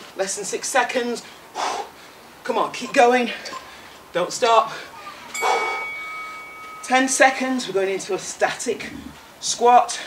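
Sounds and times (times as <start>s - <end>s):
bell-like timer chime: 5.3s - 7.8s.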